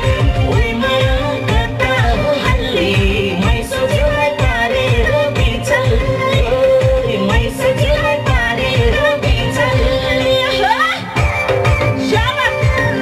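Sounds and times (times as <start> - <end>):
steady drum beat: 0.0 - 13.0
woman singing into a microphone: 0.0 - 13.0.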